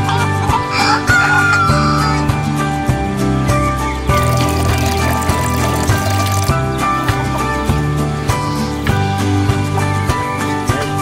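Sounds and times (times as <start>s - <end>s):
background music: 0.0s - 11.0s
rooster crowing: 0.7s - 2.2s.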